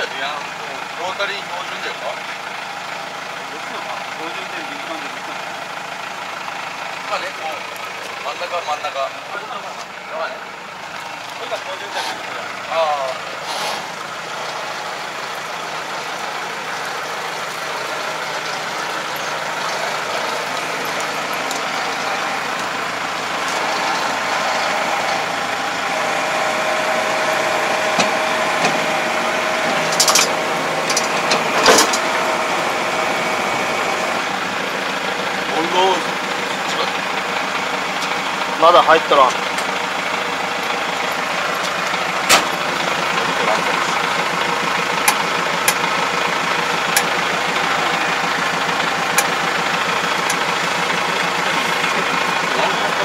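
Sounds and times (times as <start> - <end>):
tractor diesel engine running: 0.0 - 53.0
metal clanks from hitch: 29.7 - 32.1, 41.6 - 42.6.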